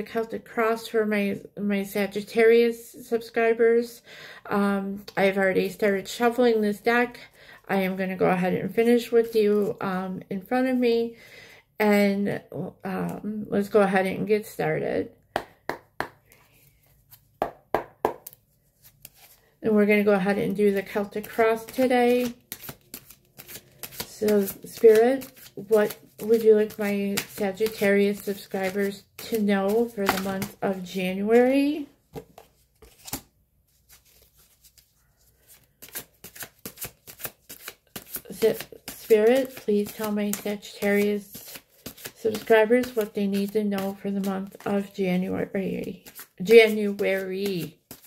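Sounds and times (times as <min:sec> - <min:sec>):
woman's voice: 0:00.0 - 0:11.2, 0:11.8 - 0:15.2, 0:19.6 - 0:22.4, 0:24.1 - 0:32.0, 0:38.3 - 0:41.6, 0:42.2 - 0:47.8
cards being shuffled: 0:18.0 - 0:19.5, 0:20.5 - 0:45.0, 0:45.9 - 0:48.0.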